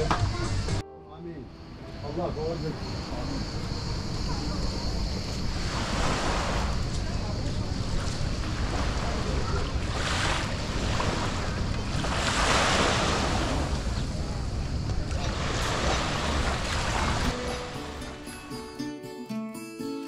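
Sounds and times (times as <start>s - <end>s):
wind rumbling on microphone: 3.4s - 17.3s
waves washing onto pebbles: 5.5s - 14.0s, 15.0s - 17.4s.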